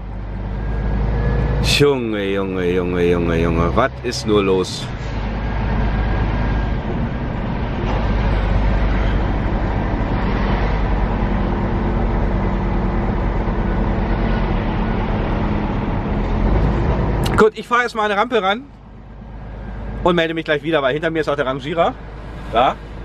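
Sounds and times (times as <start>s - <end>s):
lorry engine rumbling: 0.0s - 23.0s
road noise: 0.0s - 23.0s.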